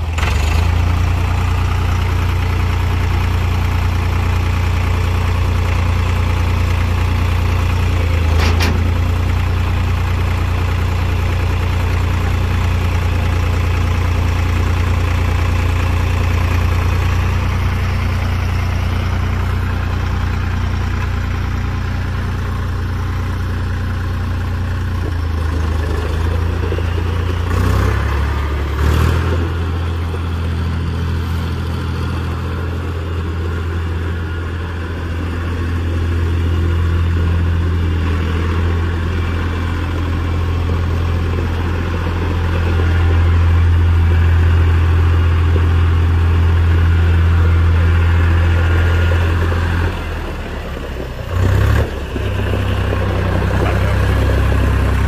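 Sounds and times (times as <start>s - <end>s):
tractor diesel engine running: 0.0s - 55.0s
tractor clunks: 5.4s - 12.9s, 38.6s - 55.0s.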